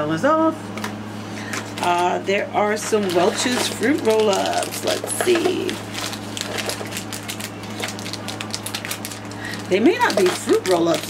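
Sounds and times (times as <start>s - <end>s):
plastic packaging crinkling: 2.7s - 11.0s.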